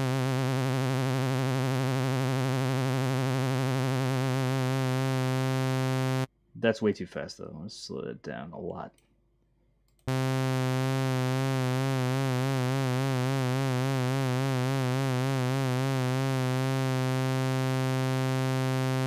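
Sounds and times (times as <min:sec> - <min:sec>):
synthesizer low note with vibrato: 0:00.0 - 0:06.3, 0:10.1 - 0:19.0.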